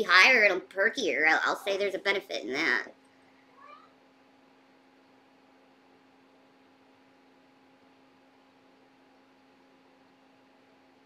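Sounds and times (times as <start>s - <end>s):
faint steady hum: 0.0s - 11.0s
cat meowing: 3.6s - 3.9s.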